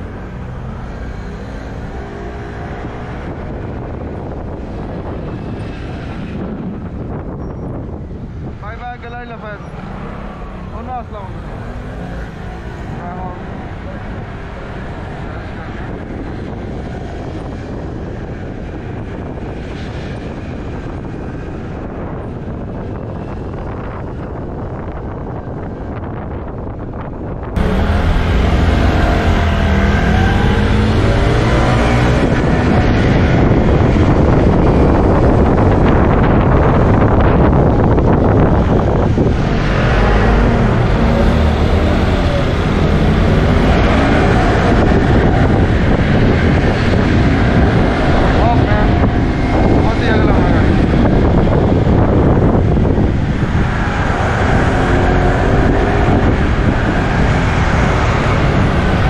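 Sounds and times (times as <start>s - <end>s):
passing traffic: 0.0s - 59.0s
wind on microphone: 0.0s - 59.0s
motorcycle engine: 27.5s - 59.0s.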